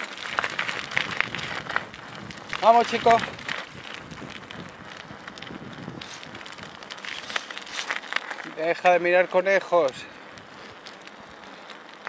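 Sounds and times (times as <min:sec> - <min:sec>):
bicycle tyres crunching on gravel: 0:00.0 - 0:12.0
crackles and rattles: 0:00.0 - 0:12.0.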